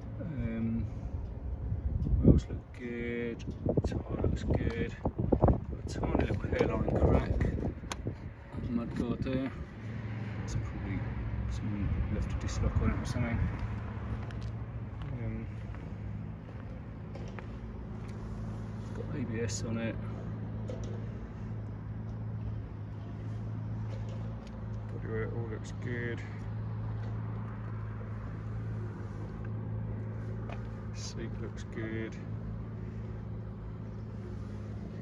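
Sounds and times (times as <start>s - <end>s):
low mechanical hum: 0.0s - 35.0s.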